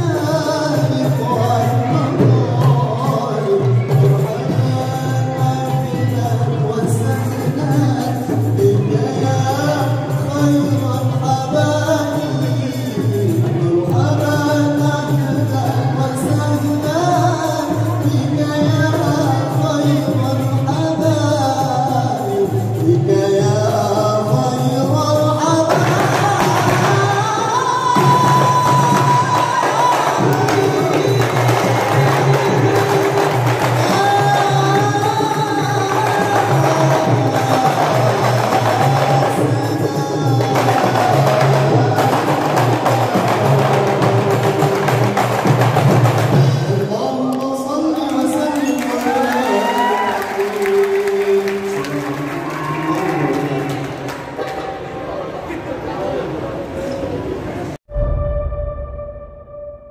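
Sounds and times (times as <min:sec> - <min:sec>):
bass drum: 0:00.0 - 0:46.9, 0:57.9 - 0:59.9
goblet drum: 0:00.0 - 0:47.0
frame drums: 0:00.0 - 0:47.6
man singing: 0:00.0 - 0:54.4.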